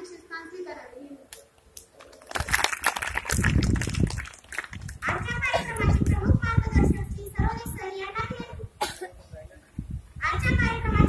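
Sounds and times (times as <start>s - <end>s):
girl speaking into a microphone: 0.0s - 1.3s, 5.0s - 9.4s, 10.2s - 11.0s.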